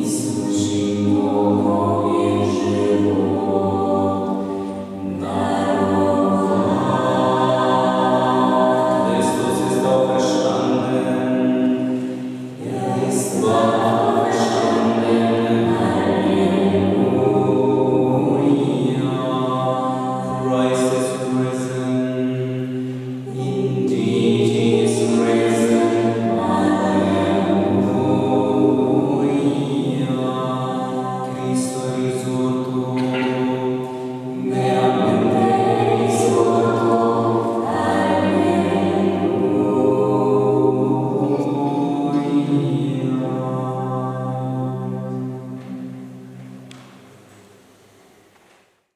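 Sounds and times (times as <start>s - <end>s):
vocal ensemble singing a cappella: 0.0s - 47.3s.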